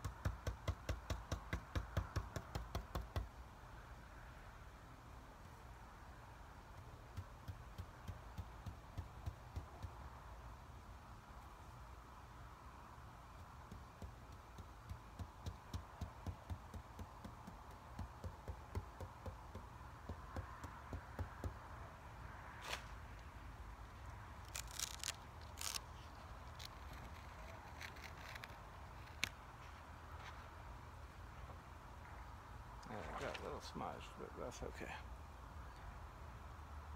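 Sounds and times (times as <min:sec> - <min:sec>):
stencil sheet crackling: 0:24.5 - 0:29.3.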